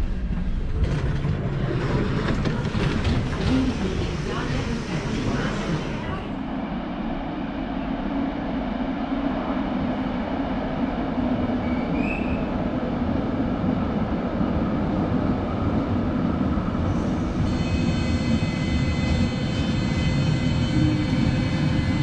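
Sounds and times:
electric train high whine: 16.4s - 22.0s.

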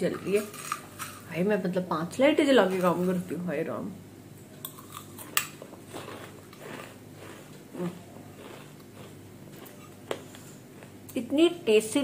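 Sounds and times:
chewing crunchy snack: 4.7s - 11.2s.

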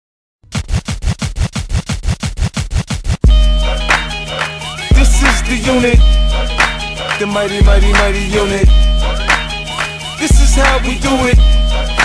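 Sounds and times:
turntable scratching: 0.5s - 12.0s
deep sustained bass: 3.3s - 12.0s
steady synth tones: 3.3s - 12.0s.

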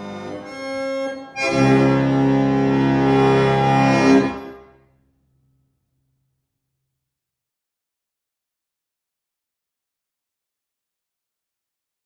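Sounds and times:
harmonium chord: 0.0s - 4.9s.

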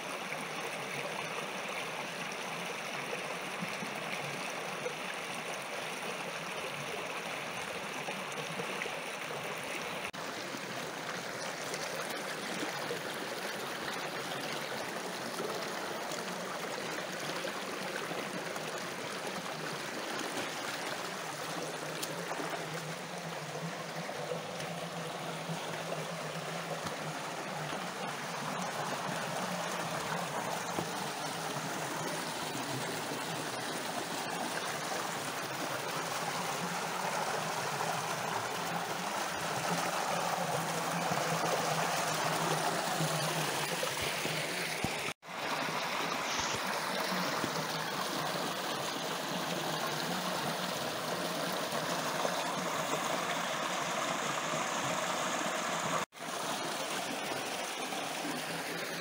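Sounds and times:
creek water splashing over rocks: 0.0s - 59.0s.

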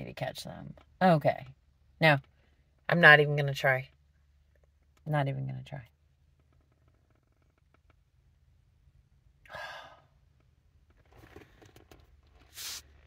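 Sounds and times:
woman sighing: 9.4s - 10.1s.

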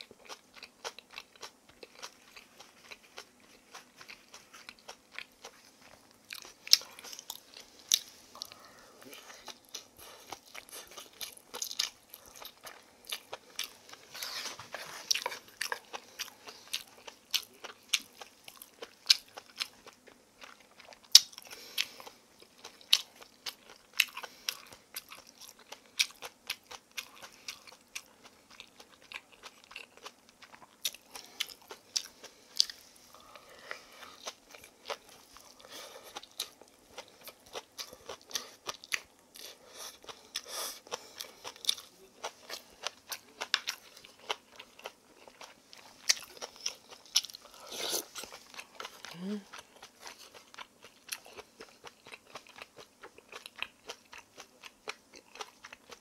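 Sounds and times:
close chewing: 0.0s - 56.0s.

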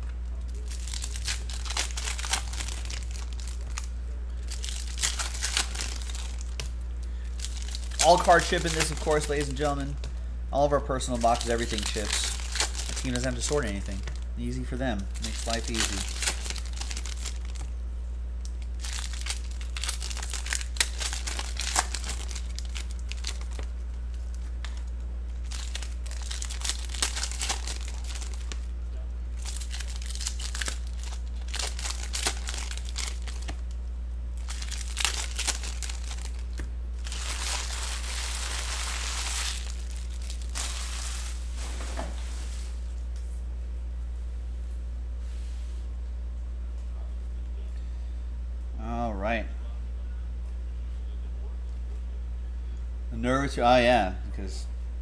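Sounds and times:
steady low hum: 0.0s - 55.0s
foil wrappers crinkling and tearing: 0.4s - 10.0s, 10.9s - 17.7s, 18.4s - 28.7s, 29.4s - 33.8s, 34.4s - 42.5s.

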